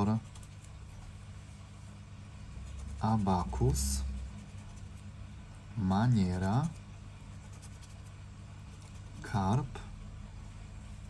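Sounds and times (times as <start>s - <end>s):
scratch card scraping: 0.0s - 1.2s, 2.5s - 5.2s, 6.3s - 9.4s
steady low hum: 0.0s - 11.0s.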